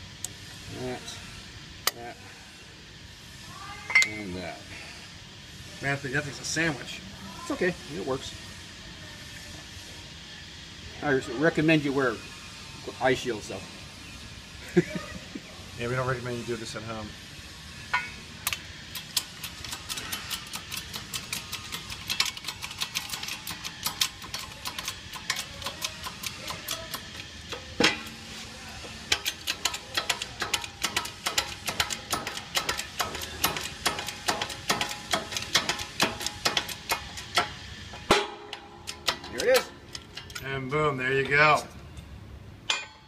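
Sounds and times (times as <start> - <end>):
bearing clicking and creaking in press: 29.1 - 40.5.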